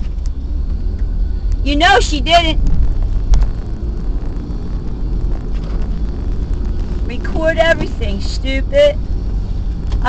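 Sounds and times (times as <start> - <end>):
car engine and tyres rumbling: 0.0 - 10.0.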